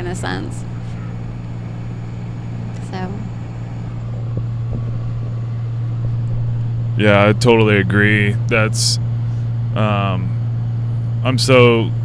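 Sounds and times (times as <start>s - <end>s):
engine and road noise in cabin: 0.0s - 12.0s.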